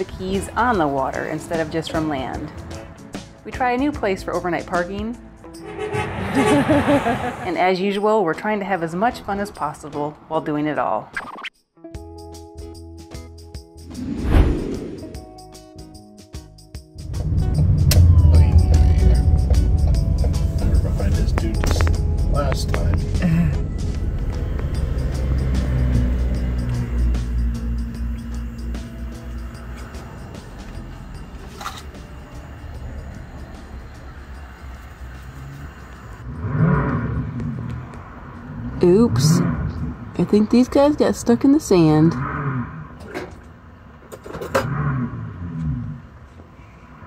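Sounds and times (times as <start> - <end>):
loud low rumble: 5.6 - 7.8.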